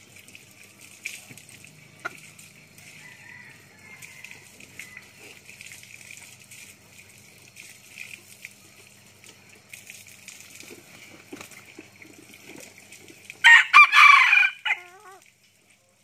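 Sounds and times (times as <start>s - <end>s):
rooster crowing: 2.8s - 5.3s, 13.4s - 15.2s.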